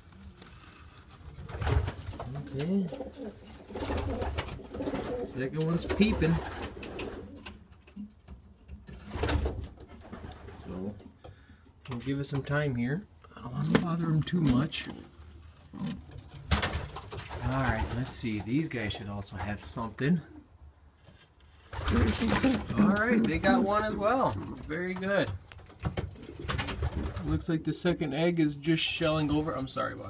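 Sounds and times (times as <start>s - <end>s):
rustling: 0.0s - 11.1s, 13.5s - 19.9s, 20.9s - 27.5s
pigeon cooing: 21.8s - 24.7s.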